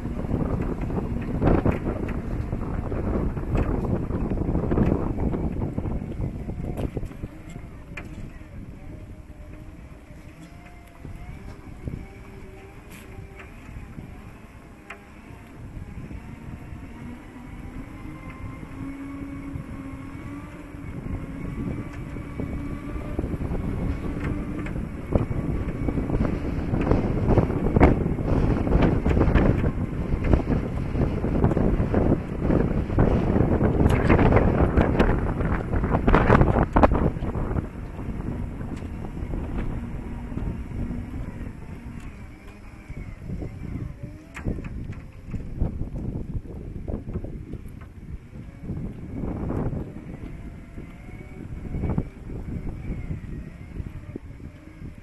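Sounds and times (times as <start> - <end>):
electric motors whining: 0.0 - 55.0
wind buffeting microphone: 0.0 - 55.0.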